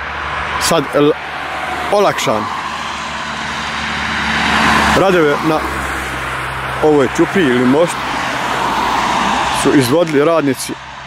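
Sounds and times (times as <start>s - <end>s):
car passing by: 0.0s - 11.0s
small van approaching: 0.0s - 11.0s.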